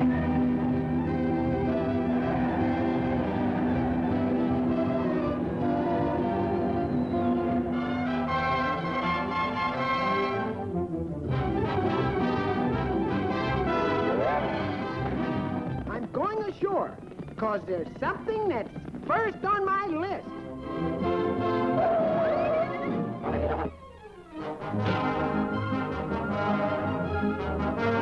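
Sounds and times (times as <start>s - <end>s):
orchestral brass music: 0.0s - 15.9s, 20.4s - 28.0s.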